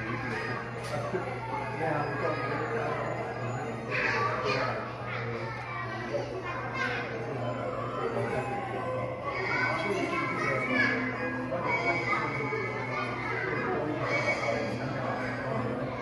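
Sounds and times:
children chattering and calling: 0.0 - 16.0.

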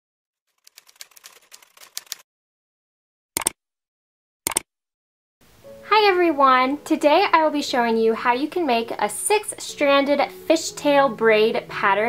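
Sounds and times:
rapid clicking and scratching: 0.5 - 2.2
sharp click: 3.4 - 3.6, 4.5 - 4.7.

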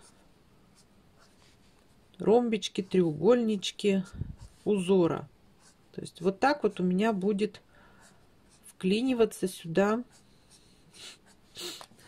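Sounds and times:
pen scratching on paper: 0.0 - 7.4, 8.0 - 12.0.

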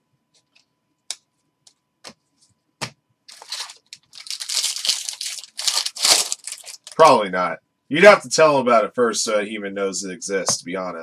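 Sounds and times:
foil wrapper tearing and crinkling: 3.3 - 7.1.

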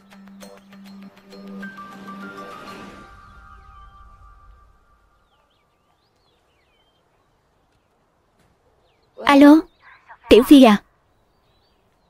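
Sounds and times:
background music: 0.0 - 5.8
birds chirping: 3.4 - 12.0.

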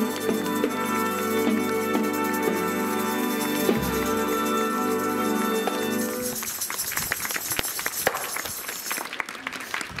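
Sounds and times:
scattered handclaps: 0.0 - 2.2, 5.3 - 10.0
marching band chord: 0.0 - 6.2.

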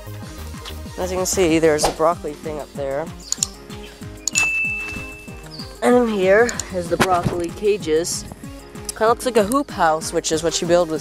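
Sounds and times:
background music with low thumps: 0.0 - 11.0
mouse clicks: 3.2 - 3.6, 4.2 - 5.6, 6.4 - 6.8
high ding: 4.3 - 5.5.

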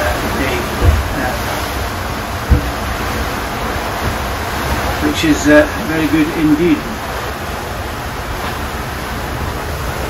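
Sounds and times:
rushing wind and water: 0.0 - 10.0
brief low thump: 0.8 - 1.1, 2.4 - 2.8.

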